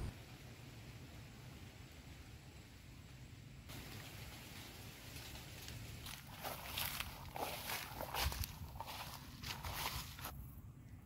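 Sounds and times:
footsteps through long grass: 0:03.7 - 0:10.4.

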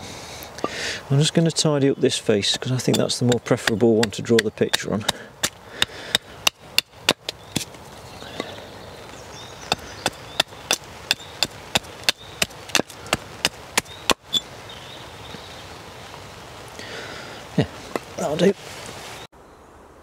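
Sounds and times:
axe strokes on wood: 0:02.5 - 0:07.8.

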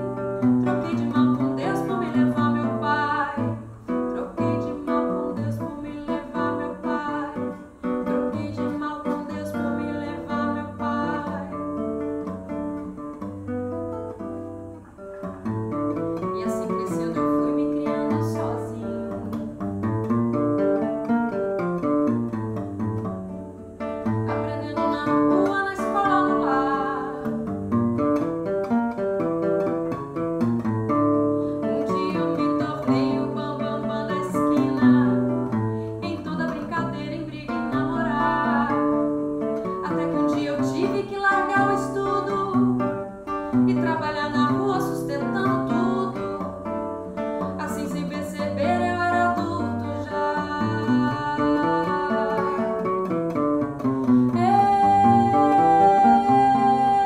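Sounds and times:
woman singing: 0:00.0 - 0:13.4, 0:15.4 - 0:20.2, 0:22.1 - 0:28.2, 0:31.0 - 0:57.0
acoustic guitar samba accompaniment: 0:00.0 - 0:57.0.

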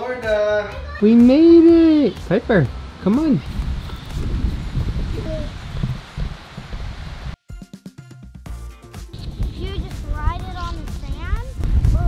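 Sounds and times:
background music: 0:00.0 - 0:04.2, 0:07.4 - 0:12.0
wind buffeting microphone: 0:03.4 - 0:07.4, 0:09.2 - 0:12.0.

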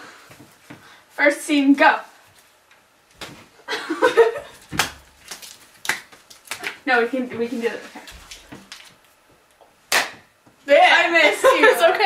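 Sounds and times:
sharp hand slap: 0:09.9 - 0:10.3.

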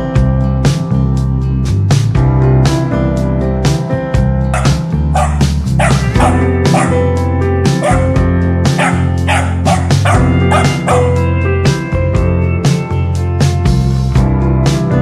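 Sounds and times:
music with steady beat: 0:00.0 - 0:15.0
puppy yipping and barking: 0:04.6 - 0:07.0, 0:07.8 - 0:08.1, 0:08.8 - 0:11.1.

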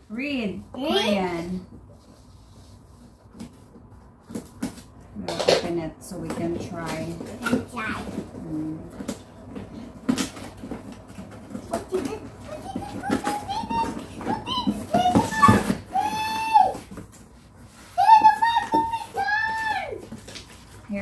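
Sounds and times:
cardboard box rustling: 0:06.8 - 0:20.8
child calling out and squealing: 0:12.6 - 0:16.8, 0:18.0 - 0:20.0.

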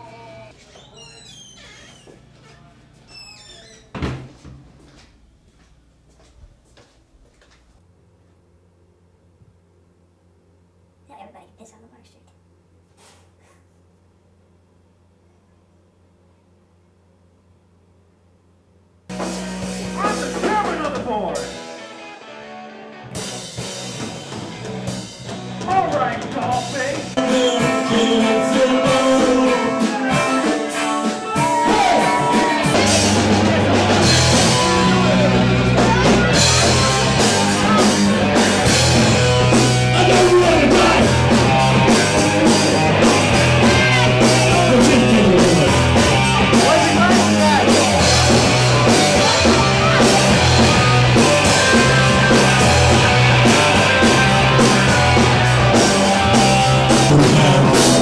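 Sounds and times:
vocals: 0:00.0 - 0:00.6, 0:19.8 - 0:21.6, 0:25.6 - 0:38.4, 0:39.6 - 0:42.4, 0:43.5 - 0:48.0, 0:57.1 - 0:58.0
drums: 0:01.5 - 0:11.3, 0:19.0 - 0:58.0
bass guitar: 0:19.1 - 0:58.0
guitars: 0:19.1 - 0:58.0.

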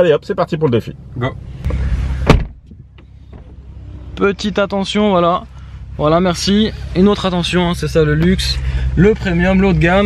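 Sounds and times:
car door thump shut: 0:01.7 - 0:03.6.

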